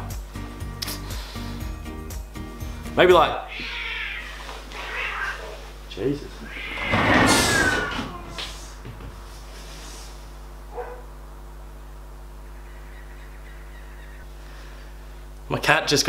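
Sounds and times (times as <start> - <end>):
cat screeching: 3.4 - 5.6, 6.4 - 8.6
steady low hum: 4.4 - 16.0.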